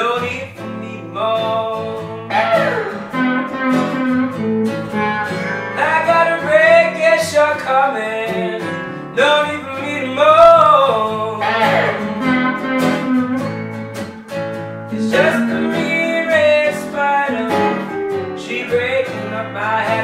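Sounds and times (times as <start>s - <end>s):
acoustic guitar strumming: 0.0s - 20.0s
electric guitar lead lines: 2.1s - 8.8s, 11.2s - 18.6s.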